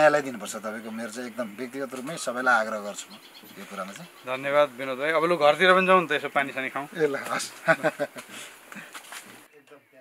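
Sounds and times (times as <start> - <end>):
man talking: 0.0 - 7.8
insects buzzing: 0.0 - 9.5.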